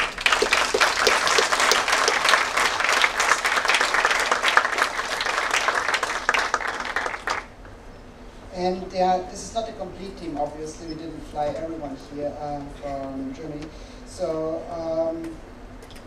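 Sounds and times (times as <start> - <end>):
audience applauding: 0.0 - 7.5.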